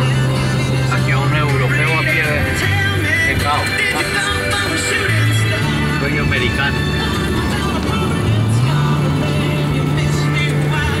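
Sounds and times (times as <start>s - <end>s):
music on car radio: 0.0s - 11.0s
road noise: 0.0s - 11.0s.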